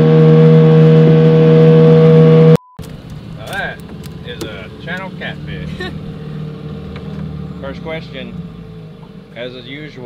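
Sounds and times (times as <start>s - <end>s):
low engine hum: 0.0s - 10.0s.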